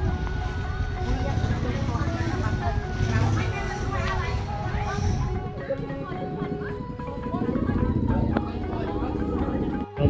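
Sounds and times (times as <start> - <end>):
music with held tones: 0.0 - 10.0
people talking: 0.0 - 10.0.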